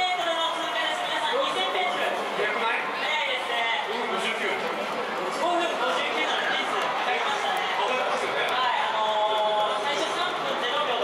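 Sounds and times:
man speaking over public address: 0.0s - 11.0s
stadium crowd noise: 0.0s - 11.0s.

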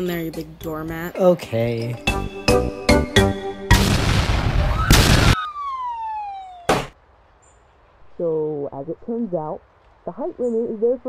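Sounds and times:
cartoon explosion blasts: 3.7s - 7.0s
falling whistle: 4.6s - 6.7s.

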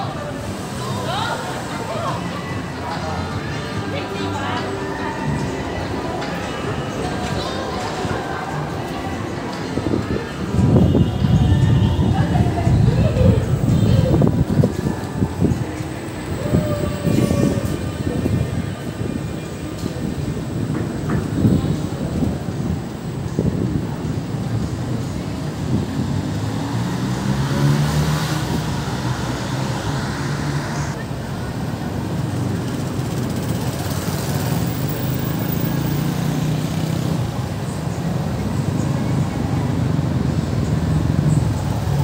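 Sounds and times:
passers-by talking: 0.0s - 42.0s.

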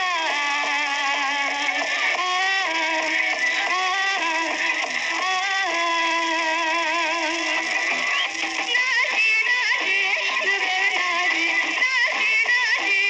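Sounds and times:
music: 0.0s - 13.0s
singing voice holding wavering notes: 0.0s - 13.0s.

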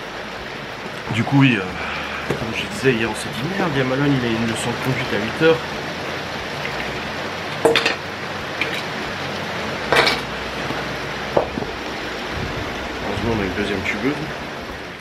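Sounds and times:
rain hissing: 0.0s - 15.0s.

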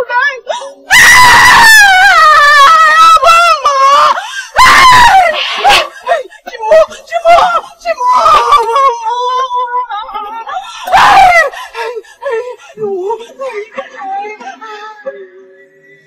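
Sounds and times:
woman screaming and wailing: 0.0s - 15.0s.

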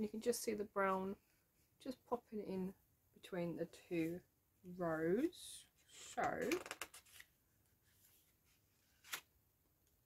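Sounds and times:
paper pages rustling: 5.9s - 9.3s.

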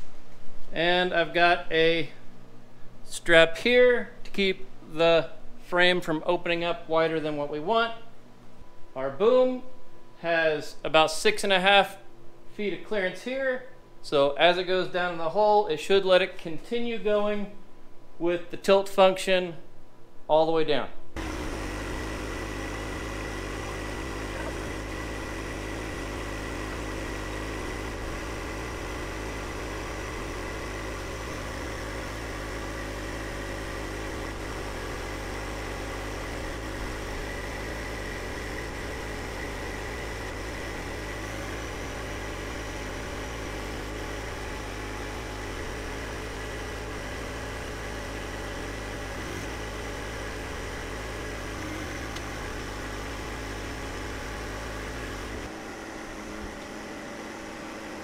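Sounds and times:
tractor diesel engine running: 21.2s - 58.0s.

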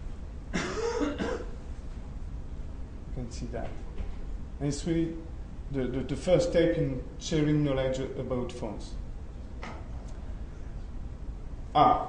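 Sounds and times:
man coughing: 0.5s - 1.6s.

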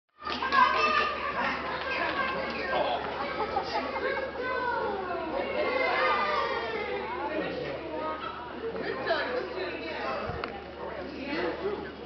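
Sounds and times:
people talking: 0.3s - 12.0s.

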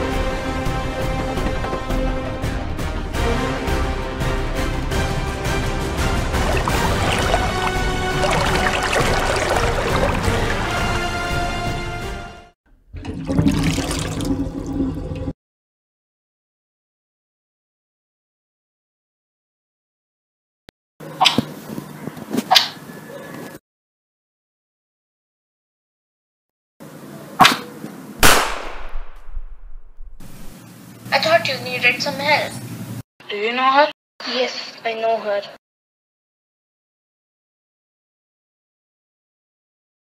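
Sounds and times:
background music: 0.0s - 12.6s
tap water pouring into basin: 6.3s - 11.4s, 12.9s - 15.3s
loud sharp bang: 28.2s - 30.1s.

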